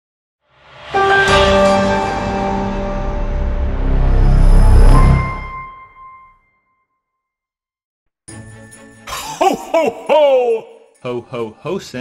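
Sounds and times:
deep rumbling swell: 2.6s - 5.5s.

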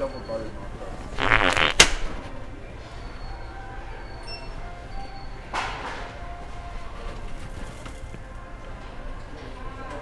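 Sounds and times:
loud fart: 1.2s - 2.2s.

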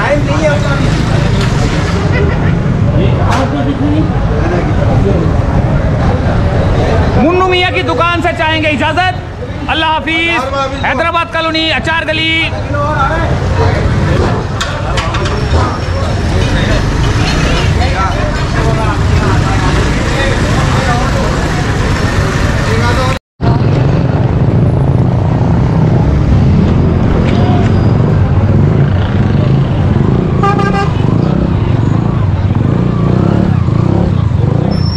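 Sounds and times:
people chattering: 0.0s - 24.2s, 25.1s - 34.8s
motorcycles and traffic rumbling: 0.0s - 34.9s
vehicle horn: 30.4s - 31.1s.

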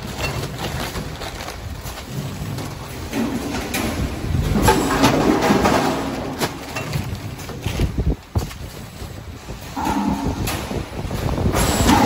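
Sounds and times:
packaging machine humming: 0.0s - 12.0s.

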